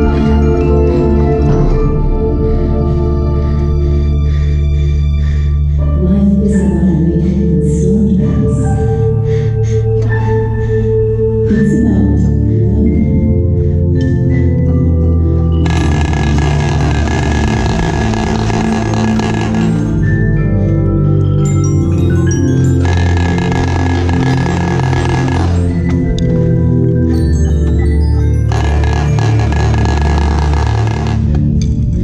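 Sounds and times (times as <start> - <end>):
mallet percussion: 0.0 - 4.2, 9.9 - 30.8
low sustained pitched tones: 0.0 - 32.0
marching snare drum roll: 15.6 - 19.9.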